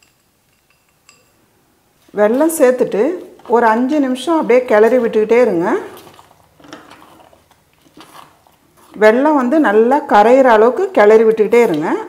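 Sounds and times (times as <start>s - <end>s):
soft squelching of stirred rice: 2.0s - 9.8s
spatula scraping pot: 2.3s - 9.9s.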